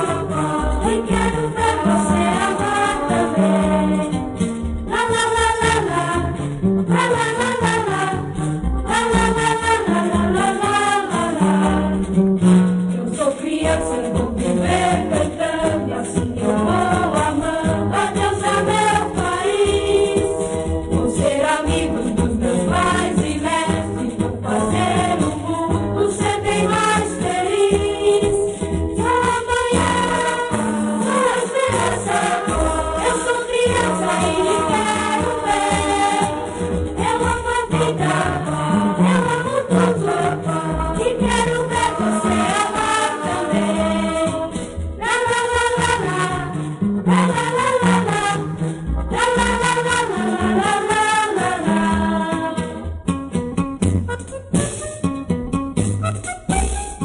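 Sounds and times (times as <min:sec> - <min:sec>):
choir singing religious song: 0:00.0 - 0:04.2, 0:04.9 - 0:12.2, 0:13.0 - 0:53.0
instrumental accompaniment: 0:00.0 - 0:57.0.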